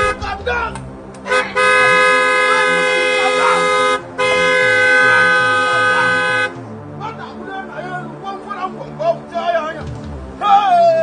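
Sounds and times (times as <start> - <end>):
car horn blasts: 0.0 - 0.4, 1.2 - 6.6.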